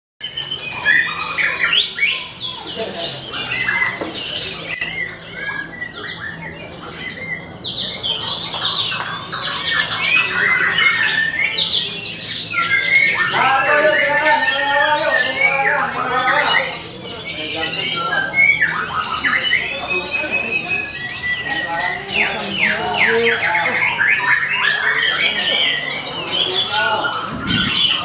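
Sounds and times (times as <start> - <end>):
songbirds chorus: 0.2 - 28.0
men calling out: 13.2 - 17.0.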